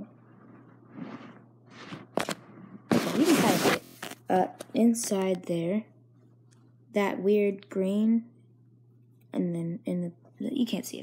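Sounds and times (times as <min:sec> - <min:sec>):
soft rustle on phone microphone: 0:00.1 - 0:04.2
fabric rubbing against phone: 0:00.3 - 0:04.2.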